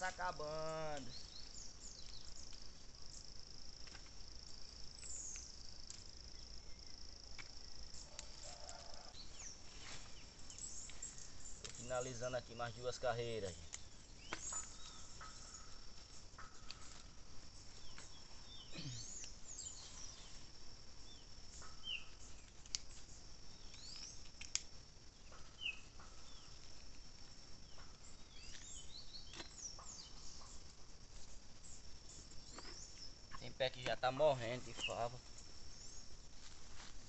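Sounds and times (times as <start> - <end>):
birds chirping: 0.0 - 3.3, 4.5 - 7.1, 7.9 - 20.5, 25.2 - 26.6, 27.6 - 30.9, 31.6 - 36.1
faint clicks: 23.6 - 24.7.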